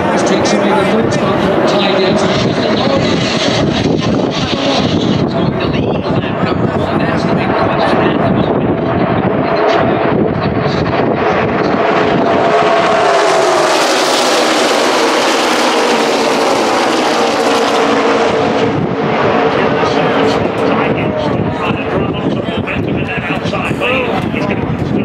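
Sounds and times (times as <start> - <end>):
race cars roaring past: 0.0 - 5.6, 6.2 - 23.6.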